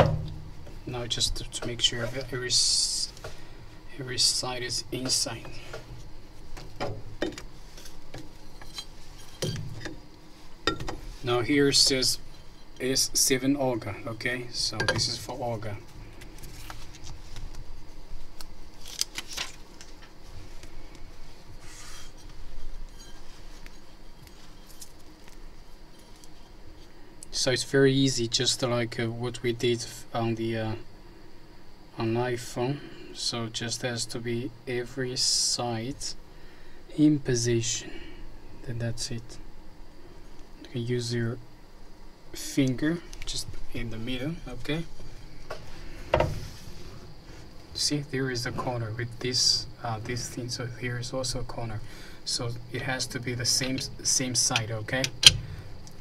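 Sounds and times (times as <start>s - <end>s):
plastic film crinkling: 18.7s - 20.1s.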